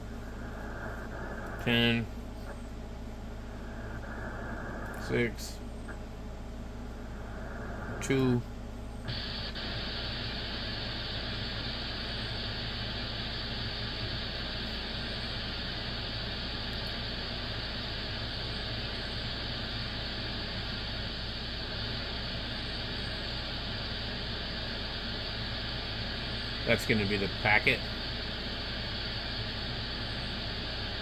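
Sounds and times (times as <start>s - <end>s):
radio receiver static hiss: 0.0s - 31.0s.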